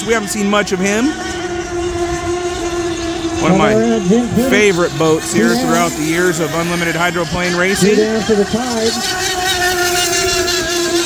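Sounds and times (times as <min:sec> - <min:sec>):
high-pitched model boat engine whine: 0:00.0 - 0:11.0.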